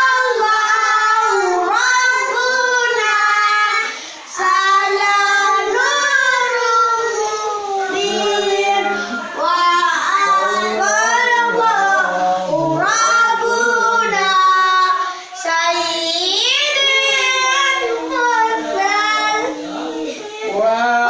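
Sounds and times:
children and man singing: 0:00.0 - 0:21.0.

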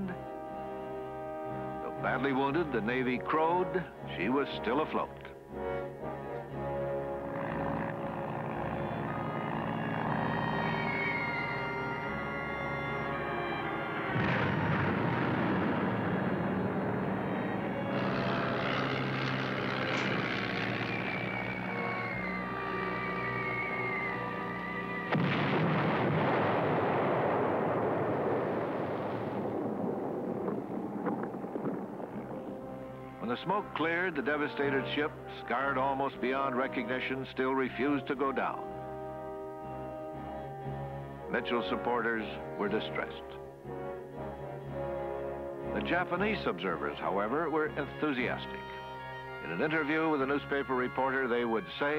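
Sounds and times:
music: 0:00.0 - 0:25.9, 0:32.1 - 0:51.9
high falling whistle: 0:10.2 - 0:15.3, 0:20.1 - 0:25.6
bomb blasts: 0:13.0 - 0:22.0, 0:25.1 - 0:33.2.

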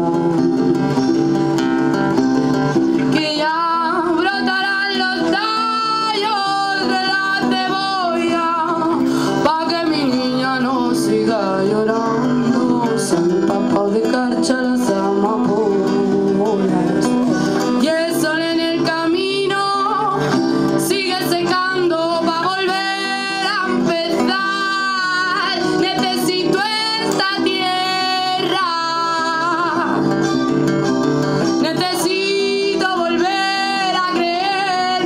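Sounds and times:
person singing: 0:00.0 - 0:01.3, 0:02.9 - 0:35.0
electric guitar: 0:00.0 - 0:35.0
strummed acoustic guitar: 0:00.0 - 0:35.0.

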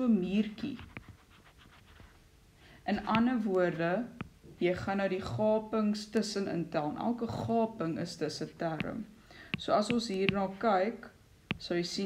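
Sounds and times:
person speaking: 0:00.0 - 0:01.2, 0:02.8 - 0:12.0
stylus strokes on glass screen: 0:00.2 - 0:02.2, 0:02.8 - 0:05.6, 0:07.4 - 0:12.0
person breathing in: 0:09.2 - 0:09.6.

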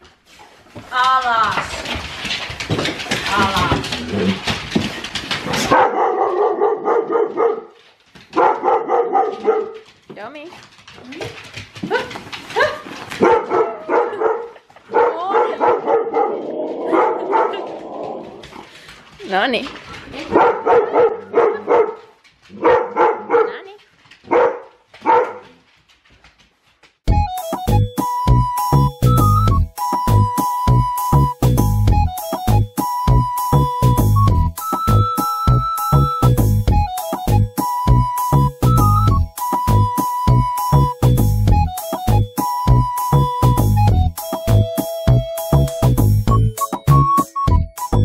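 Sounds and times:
huskies howling and whining: 0:15.1 - 0:18.7.

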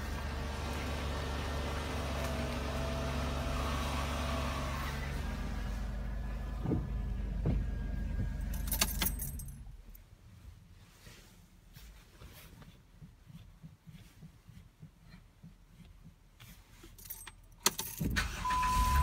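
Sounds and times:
car engine idling: 0:00.0 - 0:09.7
keys jangling: 0:08.4 - 0:09.6, 0:16.9 - 0:18.2.

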